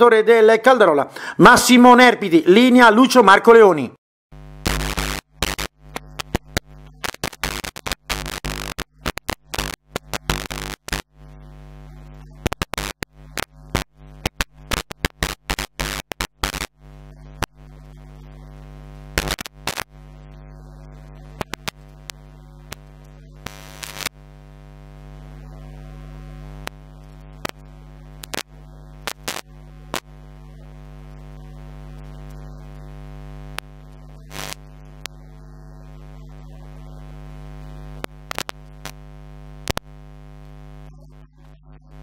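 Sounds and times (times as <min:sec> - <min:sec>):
electrical mains hum: 0:00.0 - 0:42.0
sharp crackles and pops: 0:04.6 - 0:25.4, 0:26.4 - 0:35.4, 0:36.1 - 0:41.5.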